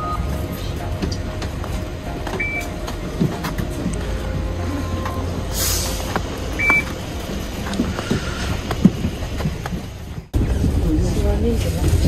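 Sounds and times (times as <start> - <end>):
bus engine idling: 0.0 - 12.0
short high beep: 6.6 - 6.9.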